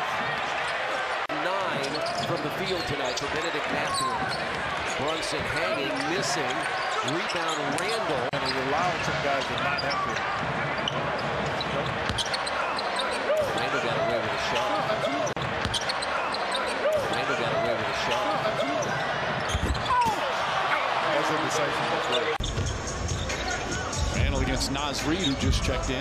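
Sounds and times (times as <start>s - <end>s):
arena crowd din: 0.0s - 26.0s
sneakers squeaking on court: 5.8s - 13.4s, 15.0s - 17.1s, 18.6s - 20.2s, 22.0s - 24.0s
basketball bouncing: 10.2s - 12.4s.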